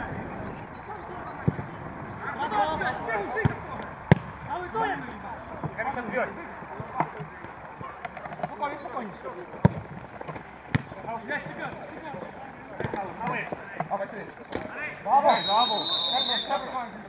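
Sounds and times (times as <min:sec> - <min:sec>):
players shouting: 0:00.0 - 0:09.9, 0:10.5 - 0:17.0
football kick thuds: 0:03.4 - 0:04.4, 0:09.6 - 0:11.0.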